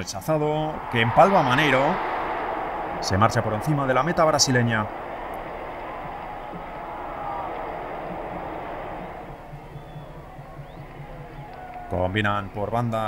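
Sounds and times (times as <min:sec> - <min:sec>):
stadium crowd murmur: 0:00.8 - 0:11.9.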